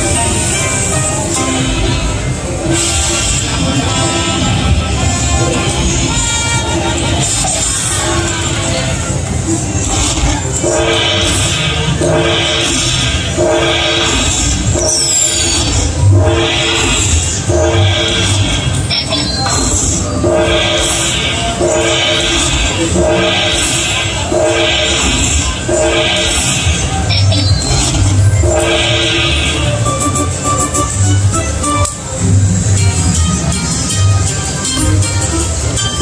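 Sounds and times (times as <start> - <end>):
slot machine chord chime: 10.5 - 31.9.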